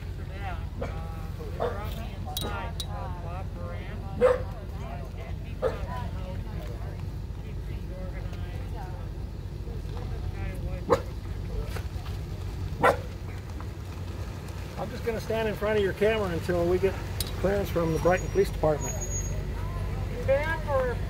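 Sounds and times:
steady low rumble: 0.0s - 18.7s
faint voices: 0.0s - 21.0s
dog barking: 1.6s - 1.9s, 4.2s - 4.5s, 5.6s - 5.9s, 10.9s - 11.1s, 12.8s - 13.1s.

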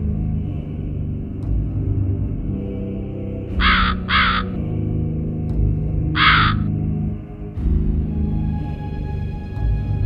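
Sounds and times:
dark music drone: 0.0s - 10.0s
crow cawing: 3.6s - 4.6s, 6.2s - 6.7s.

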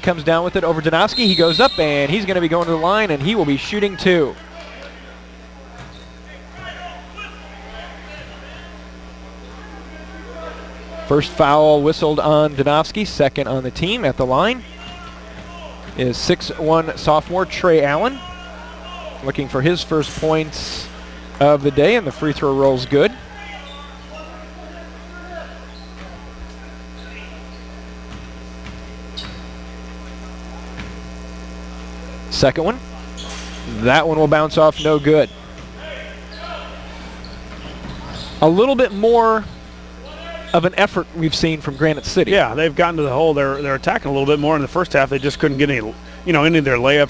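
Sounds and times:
steady electrical hum: 0.0s - 47.0s
faint crowd chatter: 2.9s - 11.4s
faint crowd murmur: 3.2s - 11.4s, 23.1s - 33.9s.

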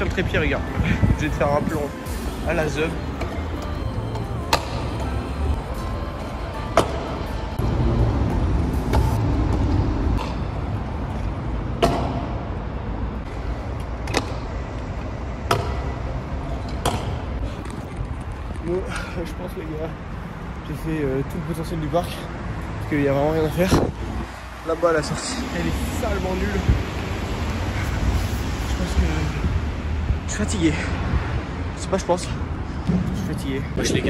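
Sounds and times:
wheels rolling on concrete: 17.4s - 19.9s.

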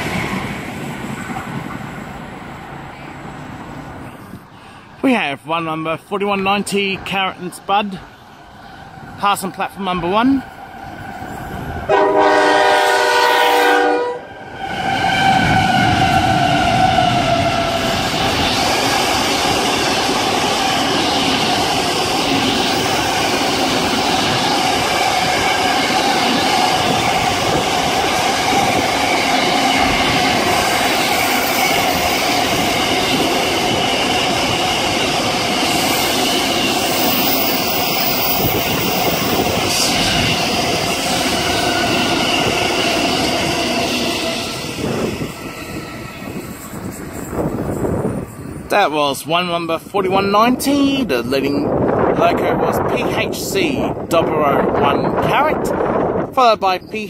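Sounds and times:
freight train passing: 0.0s - 57.0s
freight train horn: 11.9s - 17.9s.

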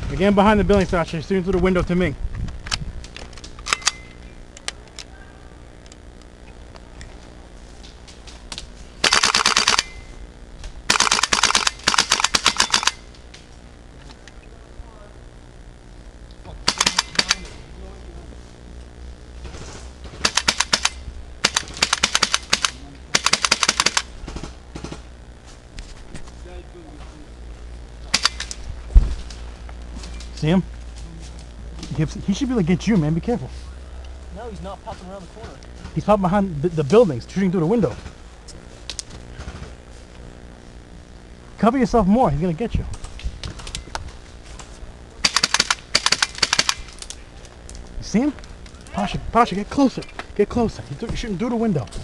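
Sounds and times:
airsoft rifle full-auto bursts: 9.0s - 10.1s, 10.9s - 13.1s, 16.6s - 17.5s, 20.2s - 25.0s, 28.1s - 28.5s, 45.2s - 46.9s.

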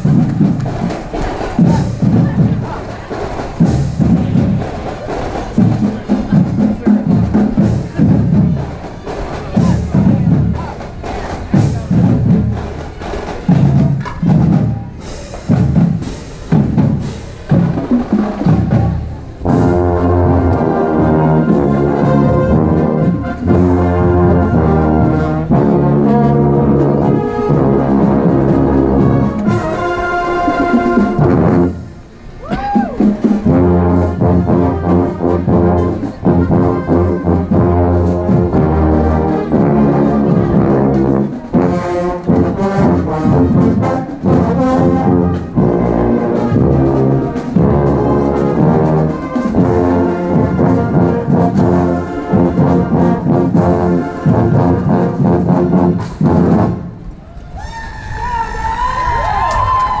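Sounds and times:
marching band brass playing: 0.0s - 57.2s
voices: 0.2s - 15.6s
trombone playing close: 17.0s - 32.1s, 33.2s - 57.1s.

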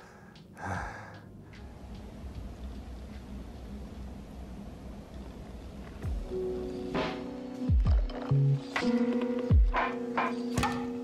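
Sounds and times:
person exhaling hard: 0.0s - 1.2s.

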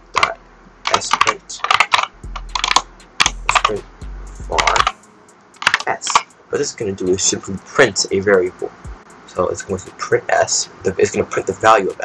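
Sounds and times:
computer keyboard typing: 0.2s - 3.8s, 4.5s - 5.0s, 5.6s - 6.3s
low hum: 2.1s - 7.8s.

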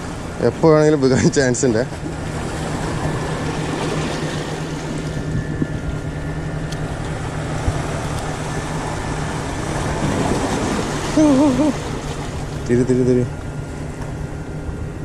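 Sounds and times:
low engine drone: 0.0s - 15.0s
outdoor noise: 0.0s - 15.0s.

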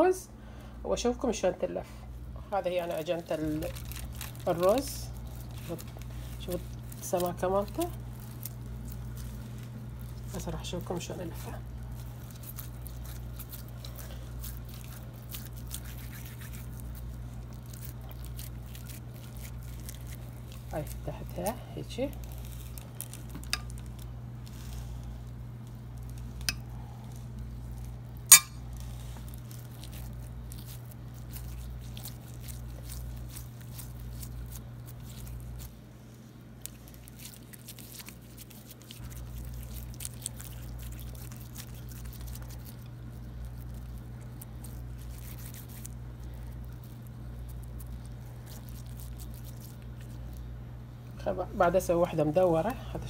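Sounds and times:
steady low hum: 0.0s - 53.0s
soft squishing of dough: 0.1s - 53.0s
metal clink on bowl: 28.3s - 28.6s.

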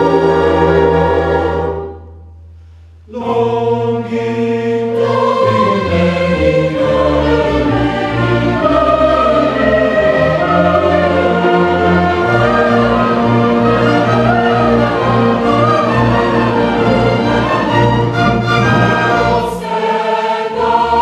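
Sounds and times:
orchestra of violins and clarinets: 0.0s - 2.0s, 5.0s - 19.8s
choir singing: 0.0s - 2.1s, 3.1s - 21.0s.

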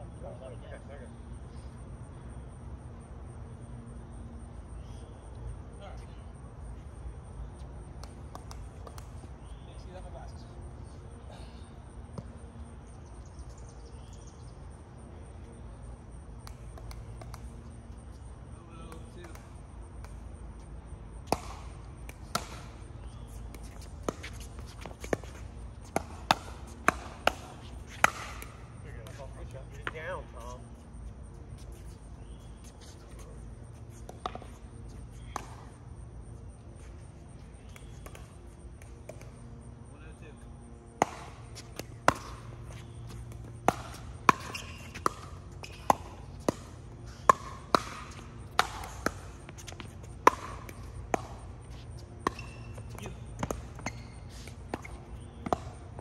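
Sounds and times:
paddles hitting plastic ball: 7.8s - 9.6s, 16.4s - 30.0s, 37.3s - 39.7s, 40.6s - 56.0s.

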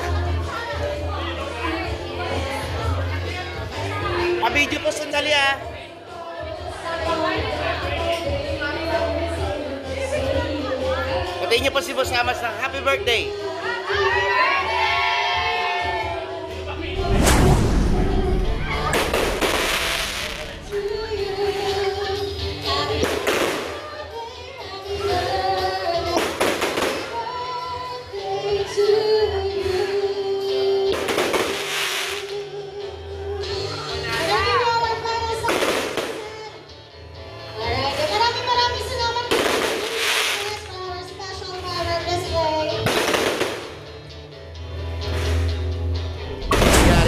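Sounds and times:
music with sung melody: 0.0s - 47.0s
fireworks bangs: 16.9s - 21.8s, 46.4s - 47.0s
fireworks crackling spray: 17.0s - 21.8s, 31.1s - 32.3s, 39.4s - 40.7s.

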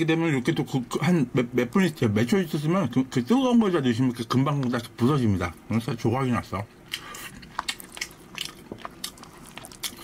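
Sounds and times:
person chewing: 6.8s - 10.0s.

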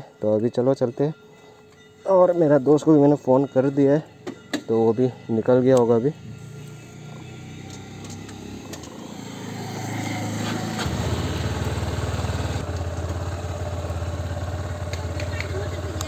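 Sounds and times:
motorcycle engine running: 6.3s - 16.0s.

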